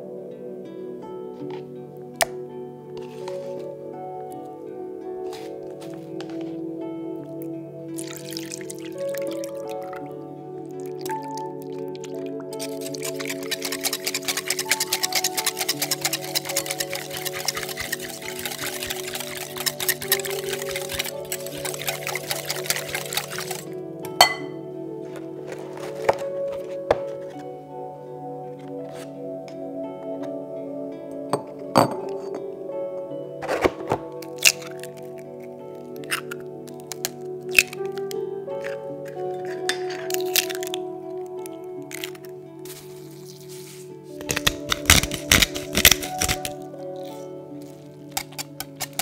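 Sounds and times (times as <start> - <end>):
background music: 0.0 - 49.0
liquid sloshing: 8.0 - 10.0, 10.8 - 24.5
pepper mill crunching: 8.0 - 10.0, 10.8 - 24.5, 33.5 - 35.2, 36.0 - 40.8, 41.8 - 43.5, 44.2 - 49.0
whisk ticking against glass bowl: 12.6 - 24.4.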